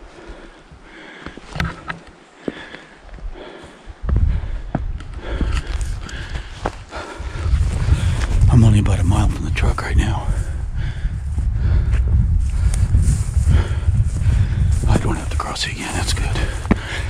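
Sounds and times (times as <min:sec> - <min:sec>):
wind buffeting microphone: 0:03.1 - 0:17.0
footsteps through dry grass: 0:09.6 - 0:17.0.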